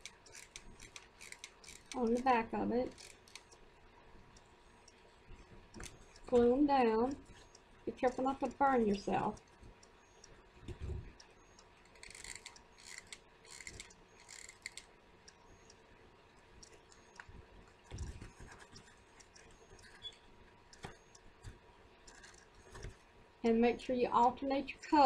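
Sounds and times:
small clicks: 0:00.0 - 0:03.6, 0:04.3 - 0:23.0.

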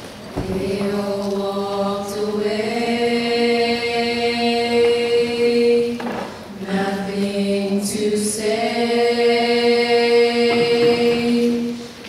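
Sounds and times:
girls singing in harmony: 0:00.2 - 0:12.0.

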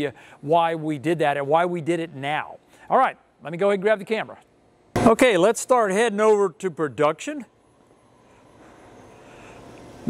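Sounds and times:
faint factory background noise: 0:00.0 - 0:10.0.

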